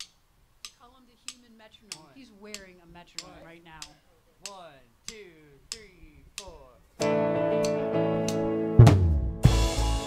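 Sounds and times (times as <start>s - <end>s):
metronome clicking: 0.0s - 8.5s
man talking: 3.2s - 7.0s.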